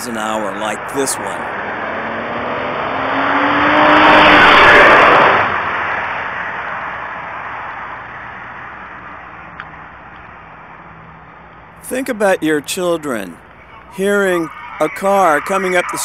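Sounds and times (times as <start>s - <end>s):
car passing fast: 0.0s - 9.3s.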